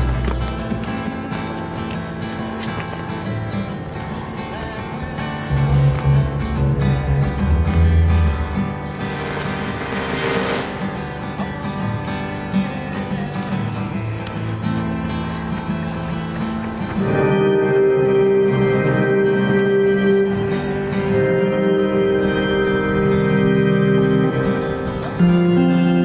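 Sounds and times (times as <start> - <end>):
acoustic guitar playing: 0.0 - 26.0.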